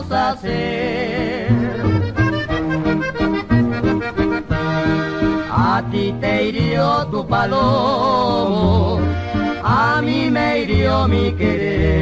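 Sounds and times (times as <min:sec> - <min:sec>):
button accordion melody: 0:00.0 - 0:07.4, 0:08.6 - 0:12.0
bass and rhythm accompaniment: 0:00.0 - 0:12.0.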